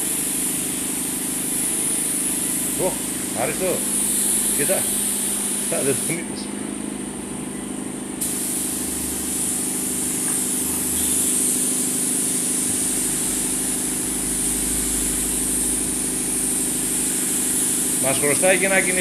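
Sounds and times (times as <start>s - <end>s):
spray gun hissing: 0.0s - 6.6s, 8.2s - 19.0s
low machine hum: 0.0s - 19.0s.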